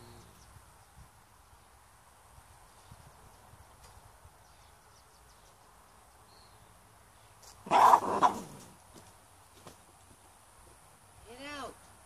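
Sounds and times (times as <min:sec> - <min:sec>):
faint outdoor background: 0:00.0 - 0:12.0
loud bark-like cry: 0:07.7 - 0:08.5.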